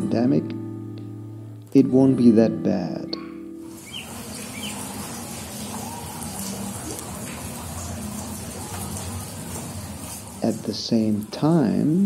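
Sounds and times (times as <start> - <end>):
faint bird chirps: 3.2 - 6.9
steady background hiss: 3.6 - 12.0.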